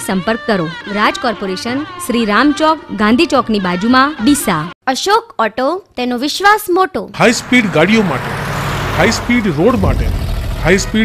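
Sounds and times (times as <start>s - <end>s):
road and wind noise: 7.1s - 11.0s
low engine rumble: 7.2s - 11.0s.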